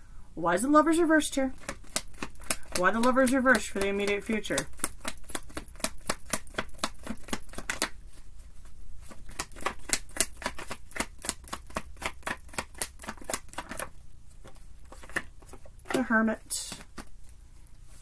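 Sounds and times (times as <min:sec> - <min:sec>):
cards being shuffled: 0:01.5 - 0:18.0.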